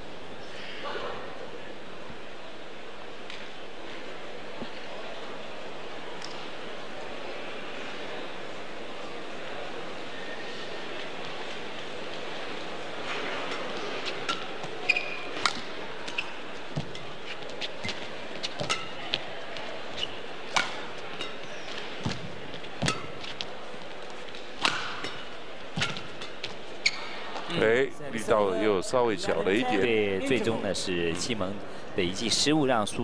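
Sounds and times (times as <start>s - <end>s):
crowd murmur: 0.0s - 33.0s
shoe squeaks on court: 14.1s - 19.0s, 19.9s - 20.3s, 25.8s - 27.5s
racket striking shuttlecock: 15.4s - 17.0s, 18.5s - 19.2s, 20.5s - 23.5s, 24.6s - 26.6s.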